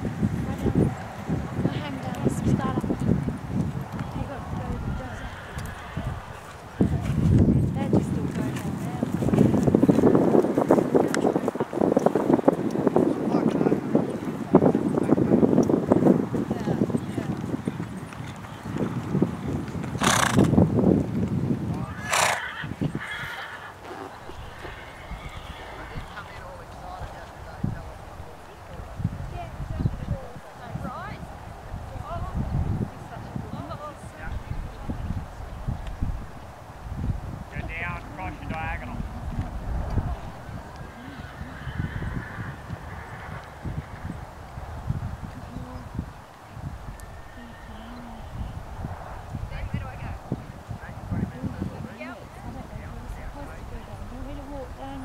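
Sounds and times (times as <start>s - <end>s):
horse hoofbeats trotting on dirt: 0.2s - 31.3s
horse snorting: 4.1s - 10.0s, 19.9s - 20.6s, 21.9s - 27.1s, 40.0s - 44.2s, 46.9s - 48.6s.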